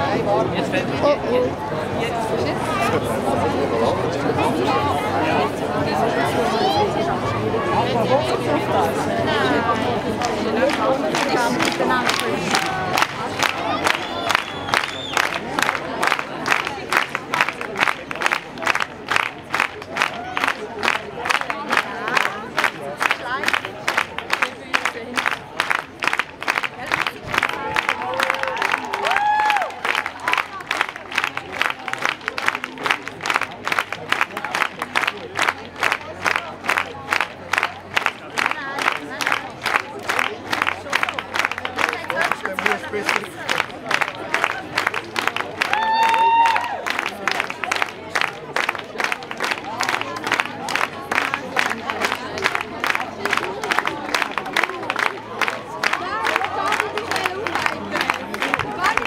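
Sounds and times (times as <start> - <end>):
crowd clapping in rhythm: 8.7 - 59.0
shouts and cheers: 27.5 - 29.8, 45.6 - 46.9.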